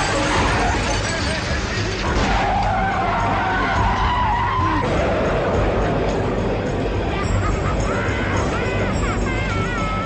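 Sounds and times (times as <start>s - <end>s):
film music: 0.0s - 10.0s.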